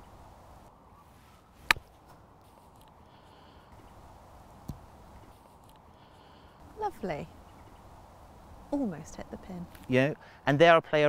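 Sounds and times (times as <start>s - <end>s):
golf club striking ball: 1.6s - 1.9s.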